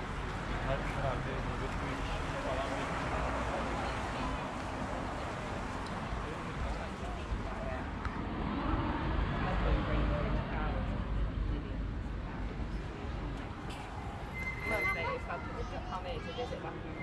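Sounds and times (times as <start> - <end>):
indistinct voices: 12.5 - 17.0.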